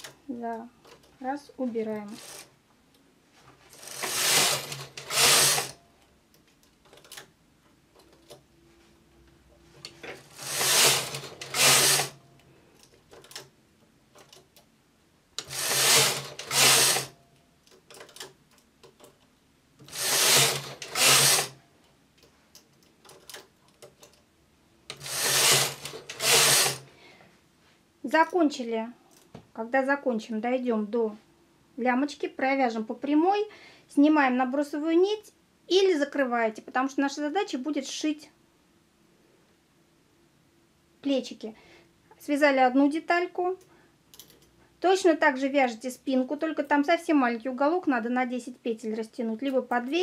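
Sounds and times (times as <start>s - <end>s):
knitting machine carriage rattling: 2.1s - 2.5s, 3.7s - 5.8s, 10.0s - 12.2s, 15.4s - 17.2s, 19.8s - 21.6s, 24.9s - 26.8s.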